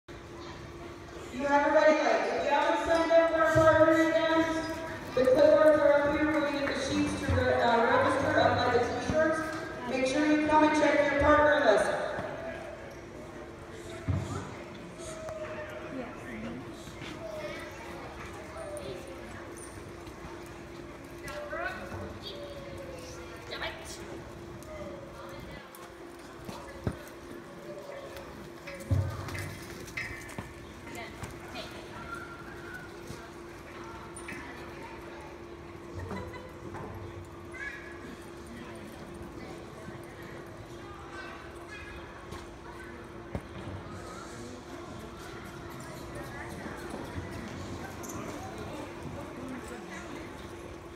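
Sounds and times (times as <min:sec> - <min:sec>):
horse hooves clip-clopping: 0:01.4 - 0:12.6, 0:16.8 - 0:40.6.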